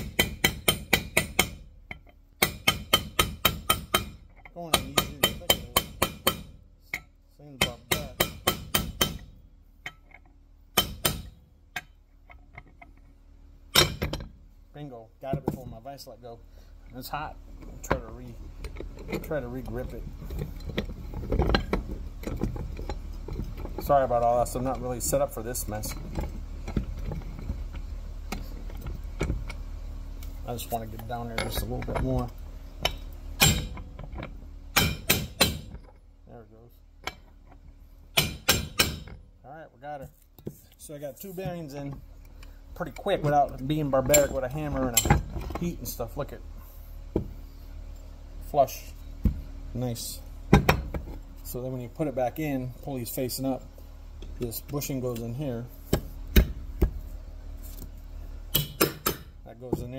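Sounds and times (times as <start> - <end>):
hammer tapping on metal: 0.0 - 9.3, 10.8 - 11.9, 34.8 - 35.8, 38.2 - 39.2, 58.5 - 59.3
metal clicks and knocks: 0.0 - 14.4, 17.6 - 29.6, 30.2 - 36.0, 37.0 - 39.2, 41.4 - 45.8, 50.5 - 51.2
steady low hum: 0.0 - 59.9.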